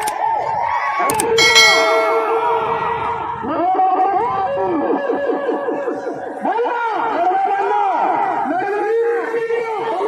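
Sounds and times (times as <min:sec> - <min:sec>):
ringing bell chime: 0:01.4 - 0:03.3.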